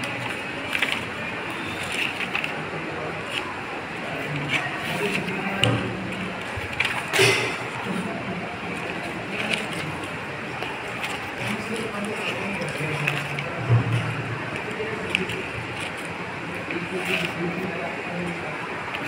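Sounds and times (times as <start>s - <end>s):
paper pages turning: 0.0s - 13.6s, 14.5s - 19.0s.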